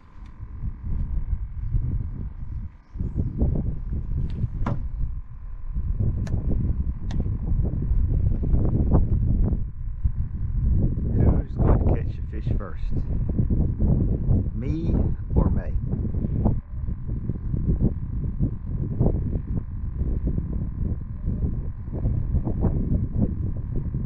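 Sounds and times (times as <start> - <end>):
wind buffeting microphone: 0.0 - 24.0
sharp clicks: 6.2 - 7.3.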